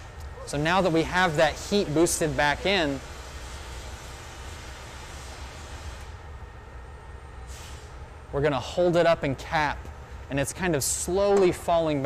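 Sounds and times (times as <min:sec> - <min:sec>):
furnace roar: 0:00.0 - 0:12.0.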